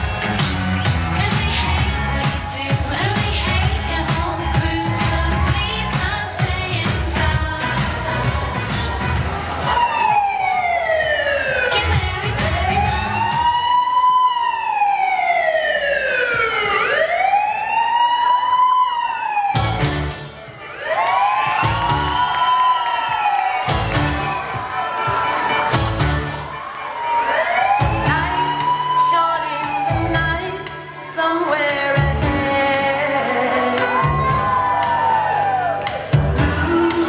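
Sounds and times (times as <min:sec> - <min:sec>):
pulsing music beat: 0:00.0 - 0:10.6, 0:29.6 - 0:37.0
wailing siren sound effect: 0:09.5 - 0:31.0.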